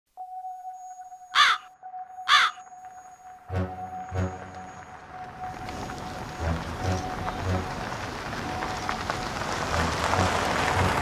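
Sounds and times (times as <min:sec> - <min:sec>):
steady high-pitched tone: 0:00.1 - 0:09.1
harsh cawing bird call: 0:01.3 - 0:01.7, 0:02.3 - 0:02.6.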